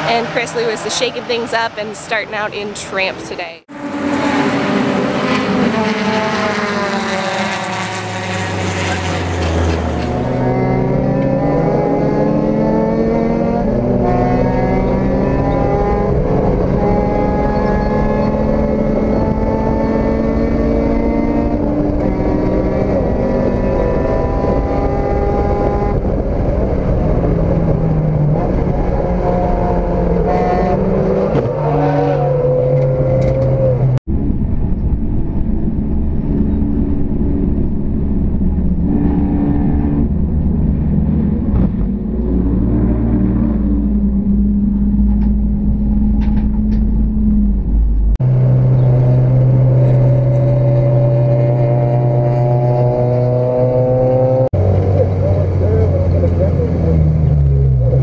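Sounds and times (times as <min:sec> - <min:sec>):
race car passing: 0:00.0 - 0:34.0
race car engine from cockpit: 0:00.0 - 0:58.0.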